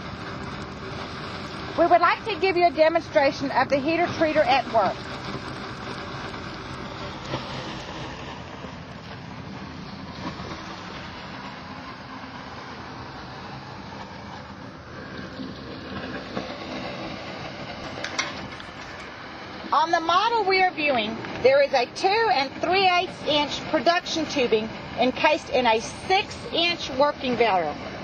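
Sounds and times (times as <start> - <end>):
hot water and steam hissing: 0.0 - 28.0.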